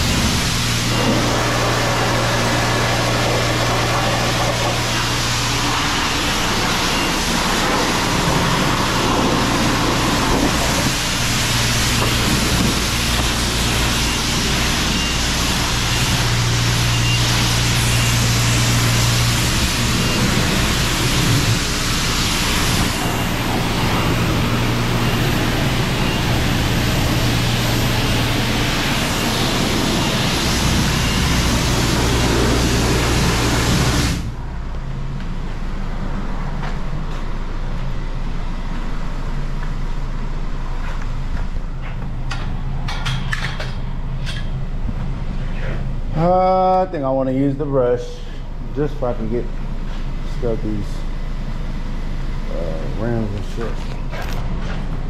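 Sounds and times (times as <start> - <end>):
pressure washer spray hissing: 0.0 - 34.3
steady low hum: 0.0 - 55.0.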